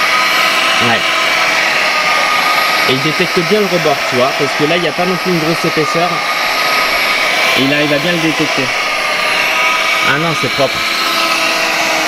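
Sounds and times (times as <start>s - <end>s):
window robot suction fan whine: 0.0s - 12.0s.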